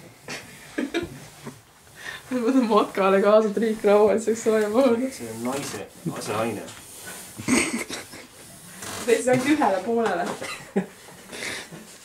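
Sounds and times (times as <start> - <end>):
rustling noise: 0.0 - 12.0.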